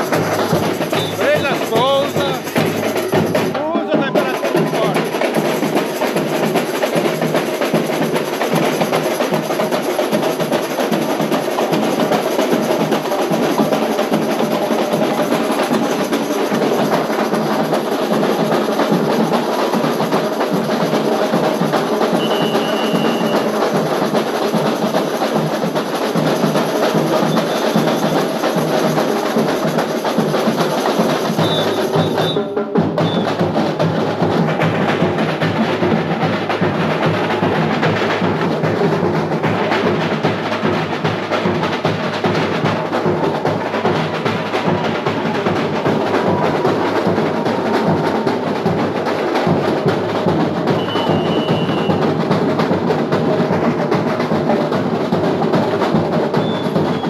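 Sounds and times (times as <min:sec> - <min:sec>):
samba drumming: 0:00.0 - 0:57.0.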